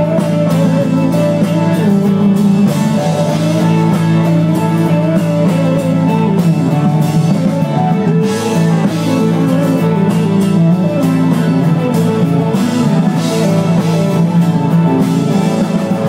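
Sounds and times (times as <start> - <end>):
electric guitar: 0.0 - 16.0
rock band playing instrumental: 0.0 - 16.0.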